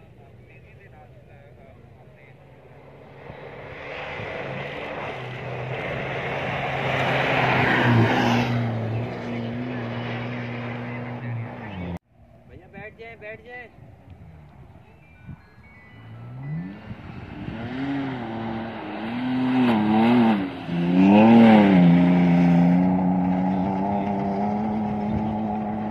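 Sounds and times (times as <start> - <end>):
rally car engine: 0.0 - 12.0, 16.0 - 25.9
tyres on dirt track: 0.0 - 25.9.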